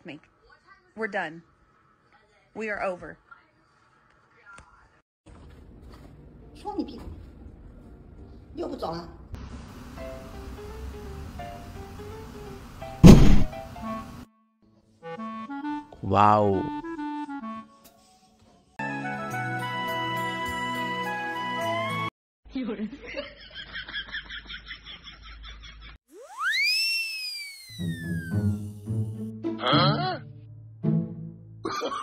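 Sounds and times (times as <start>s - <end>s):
quiet background music: 0.0s - 18.8s
cat dropping into hamper thunk: 13.0s - 13.5s
whistle sweeping up and down: 26.1s - 28.8s.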